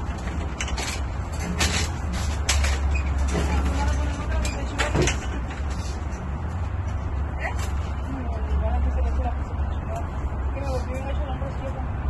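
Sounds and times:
metal frame clanking: 0:00.0 - 0:06.2.

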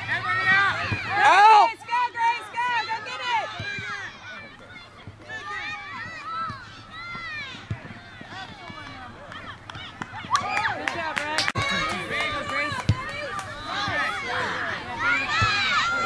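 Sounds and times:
many voices shouting: 0:11.6 - 0:16.0.

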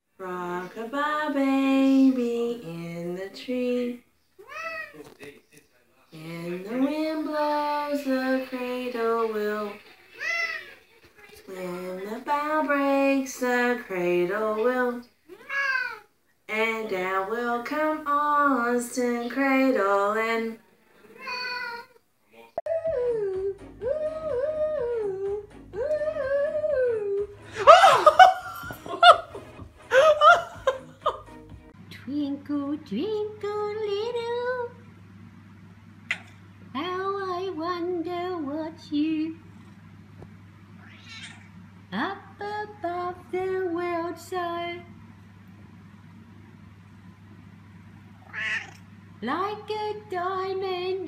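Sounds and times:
cat meowing: 0:04.4 - 0:05.0, 0:15.3 - 0:16.0, 0:21.2 - 0:21.9, 0:40.8 - 0:41.5, 0:48.2 - 0:48.8
loud laughter: 0:27.5 - 0:31.3.

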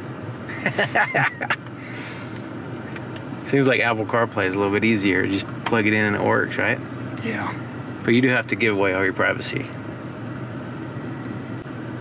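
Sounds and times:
car climate fan blowing: 0:00.0 - 0:12.0.

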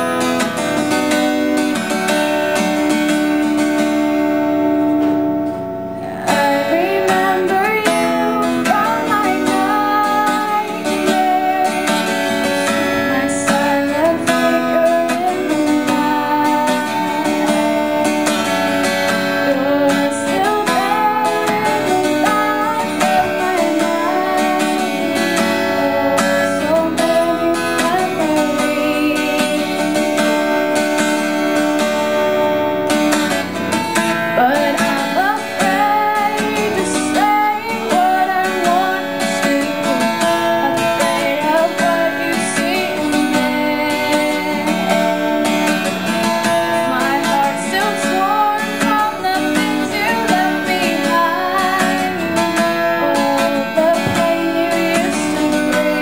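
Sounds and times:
strummed acoustic guitar: 0:00.0 - 0:56.0
woman singing: 0:05.9 - 0:56.0.

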